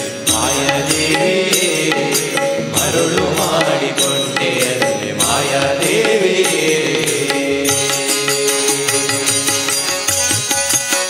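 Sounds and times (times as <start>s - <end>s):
man singing: 0.0s - 9.8s
instrumental accompaniment: 0.0s - 11.0s
percussion strikes: 0.0s - 11.0s.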